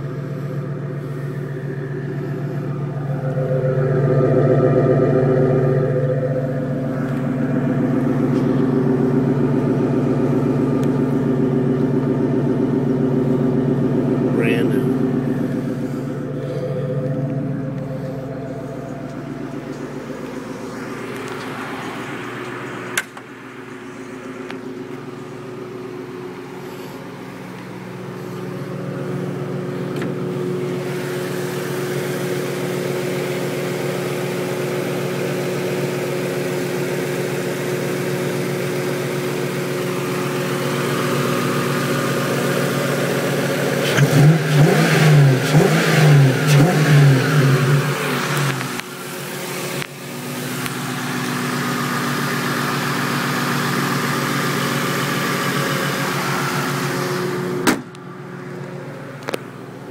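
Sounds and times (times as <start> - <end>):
car engine idling and revving: 0.0 - 59.9.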